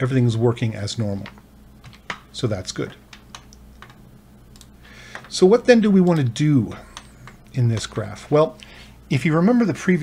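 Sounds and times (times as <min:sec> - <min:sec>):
computer keyboard clicking: 0:03.1 - 0:05.3.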